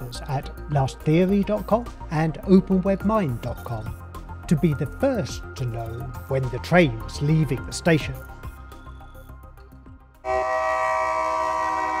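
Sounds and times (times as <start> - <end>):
locomotive air horn: 10.2 - 12.0.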